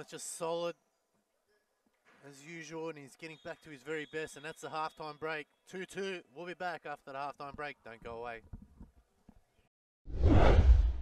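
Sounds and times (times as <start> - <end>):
deep rumble: 10.1 - 11.0
whoosh transition effect: 10.1 - 11.0.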